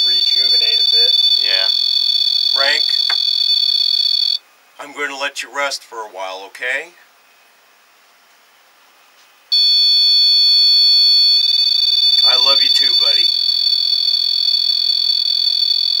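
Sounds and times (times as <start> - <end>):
electronic alarm tone: 0.0 - 4.4, 9.5 - 16.0.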